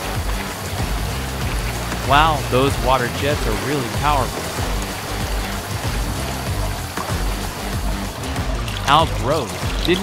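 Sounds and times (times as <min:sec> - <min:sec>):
background music: 0:00.0 - 0:10.0
water jets splashing on dishes: 0:00.0 - 0:10.0.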